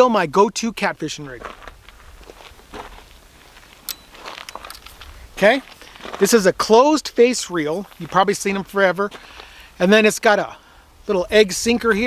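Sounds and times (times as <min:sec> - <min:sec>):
soft footsteps: 0:01.3 - 0:06.4, 0:07.6 - 0:09.6
fishing rod handling rustle: 0:01.6 - 0:06.3.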